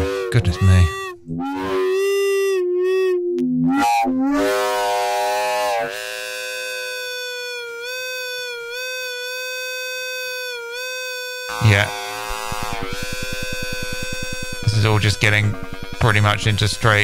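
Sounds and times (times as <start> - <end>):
pitched feedback drone: 0.0 - 17.0
rapid pulsing feedback: 0.0 - 17.0.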